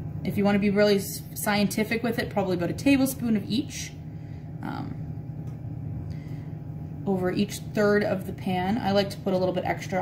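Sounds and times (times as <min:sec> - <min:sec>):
faint steady whine: 0:00.0 - 0:10.0
low mechanical hum: 0:00.0 - 0:10.0.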